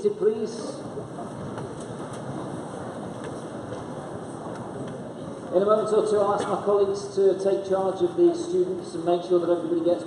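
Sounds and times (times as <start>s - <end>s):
audience shifting and rustling: 0.0s - 10.0s.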